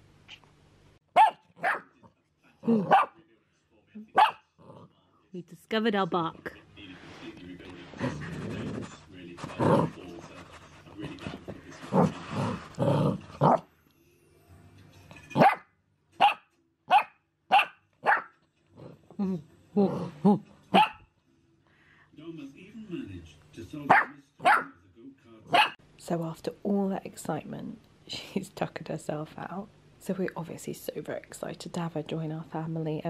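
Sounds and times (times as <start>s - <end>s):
puppy barking: 1.1s - 2.0s, 2.8s - 3.2s, 4.1s - 4.5s, 15.4s - 18.4s, 20.7s - 21.1s, 23.9s - 24.8s, 25.5s - 25.8s
puppy growling: 1.6s - 3.2s, 4.2s - 5.0s, 7.9s - 10.2s, 11.0s - 13.7s, 18.6s - 20.9s.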